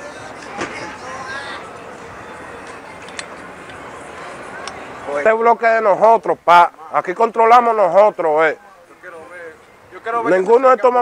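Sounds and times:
outdoor street background noise: 0:00.0 - 0:11.0.

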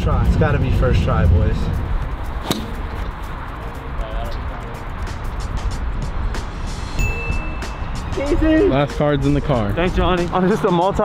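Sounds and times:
music: 0:00.0 - 0:11.0
golf club striking ball: 0:02.3 - 0:03.3.

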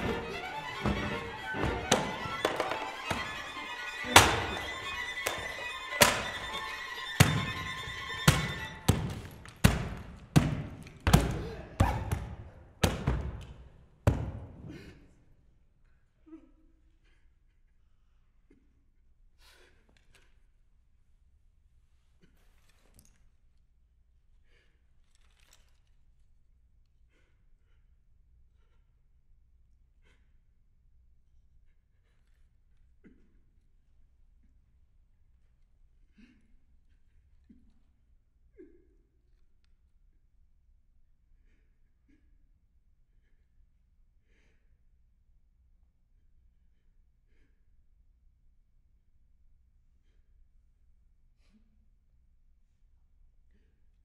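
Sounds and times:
string quartet music: 0:00.0 - 0:09.6.

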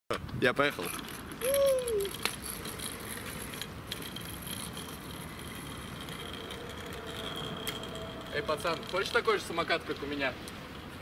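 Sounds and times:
scooter wheels rolling on wet asphalt: 0:00.7 - 0:11.0.

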